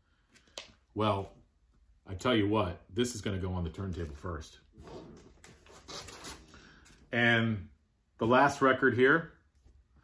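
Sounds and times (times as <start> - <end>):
rustling of record sleeves: 3.6 - 7.2.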